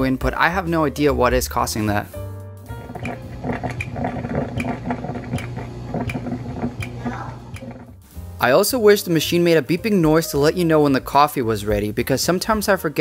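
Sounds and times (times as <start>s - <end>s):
background music: 0.0s - 13.0s
coffee maker clicking: 2.8s - 8.0s.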